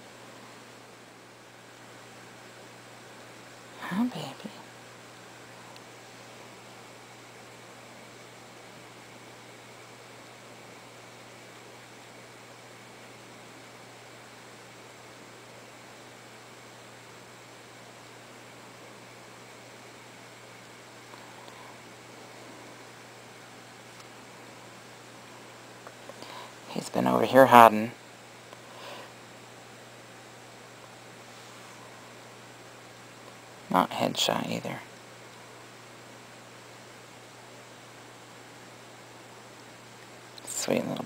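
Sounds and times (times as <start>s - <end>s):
low hiss with faint hum: 0.0s - 41.0s
soft rustle: 31.2s - 32.0s.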